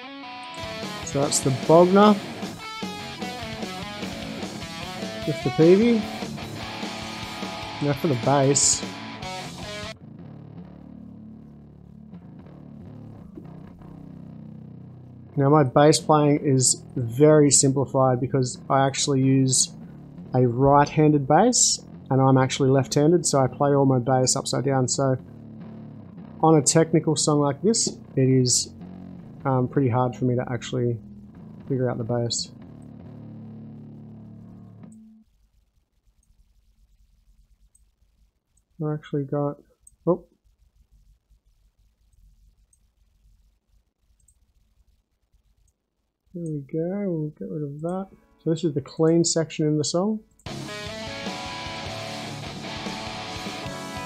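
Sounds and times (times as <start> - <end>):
electric bass guitar notes: 0.0 - 35.0, 50.5 - 54.0.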